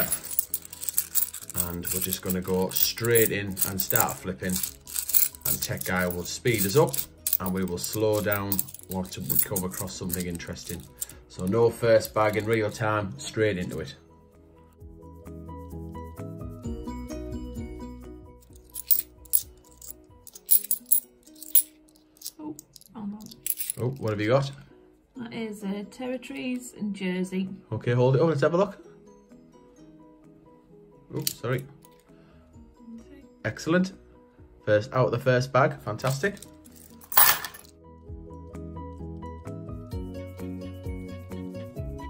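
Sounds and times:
coins clinking: 0:00.0 - 0:12.8, 0:18.4 - 0:24.2, 0:36.0 - 0:37.7
background music: 0:00.0 - 0:42.0.

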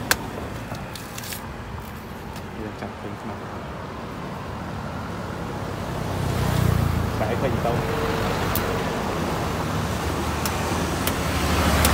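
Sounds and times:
passing vehicle engine: 0:04.2 - 0:11.9.

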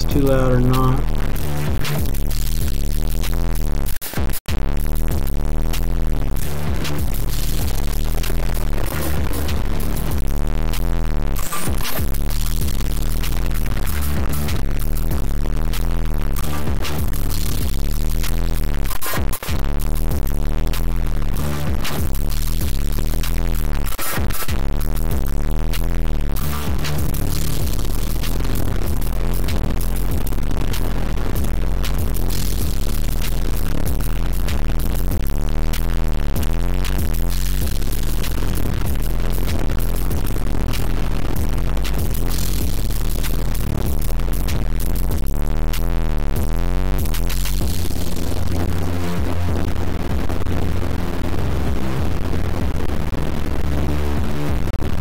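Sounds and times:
dense electronic noise music: 0:00.0 - 0:55.0.

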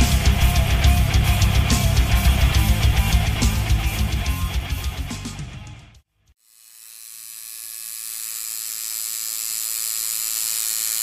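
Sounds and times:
tattoo machine buzzing: 0:00.0 - 0:04.8, 0:06.4 - 0:11.0.

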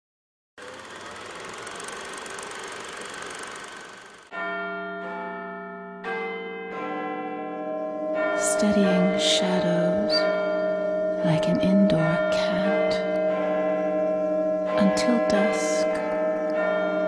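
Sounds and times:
bells ringing: 0:00.6 - 0:17.0.

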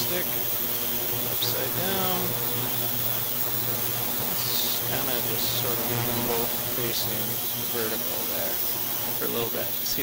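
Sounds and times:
low even hum: 0:00.0 - 0:09.7
ultrasonic cleaner hissing: 0:00.0 - 0:10.0.

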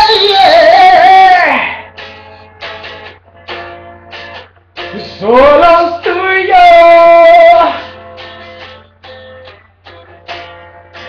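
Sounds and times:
man singing a high note: 0:00.0 - 0:01.9, 0:04.9 - 0:07.9.

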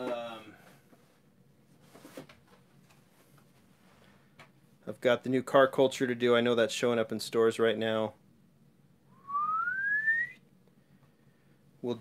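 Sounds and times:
whistled note rising in pitch: 0:09.1 - 0:10.4.

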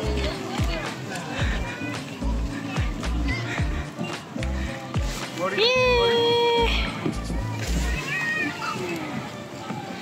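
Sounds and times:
music with repeating bass beat: 0:00.0 - 0:06.0, 0:06.6 - 0:08.0.

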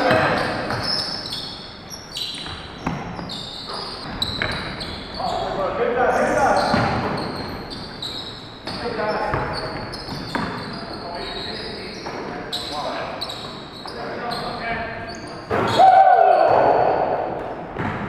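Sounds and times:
sneaker squeaks: 0:00.0 - 0:18.0
basketball bouncing on hardwood: 0:04.0 - 0:04.9, 0:06.7 - 0:07.2, 0:08.6 - 0:10.6, 0:17.7 - 0:18.0.

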